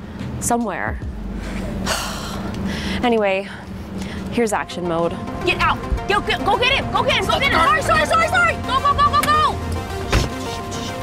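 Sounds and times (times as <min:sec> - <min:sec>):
low background hum: 0:00.0 - 0:05.4
woman breathing in sharply: 0:01.4 - 0:04.3.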